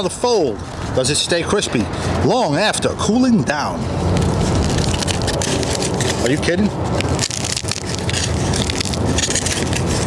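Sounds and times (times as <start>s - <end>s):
pizza crust crackling: 4.0s - 10.0s.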